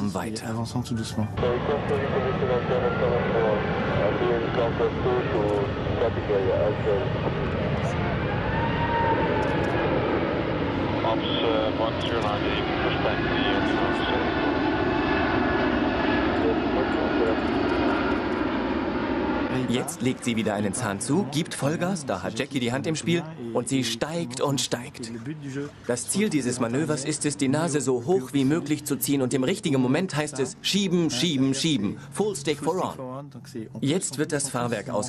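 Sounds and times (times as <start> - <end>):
jet airliner roar overhead: 0.0 - 33.0
faint voices: 1.3 - 8.0, 11.0 - 14.5, 16.2 - 18.1.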